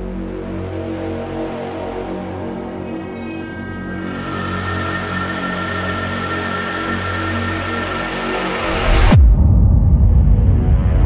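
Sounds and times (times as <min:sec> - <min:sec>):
low drone: 0:01.1 - 0:11.0
swell of noise: 0:02.6 - 0:11.0
held high tones: 0:03.0 - 0:08.8.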